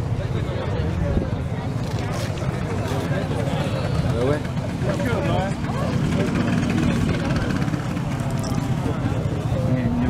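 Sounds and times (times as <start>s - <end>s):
people talking: 0.0s - 10.0s
scooter engines idling: 1.7s - 10.0s.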